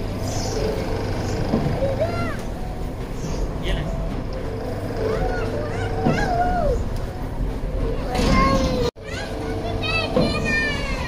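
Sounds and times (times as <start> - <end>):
steady background hum: 0.0 - 11.0
children calling out: 5.0 - 6.9, 7.8 - 11.0.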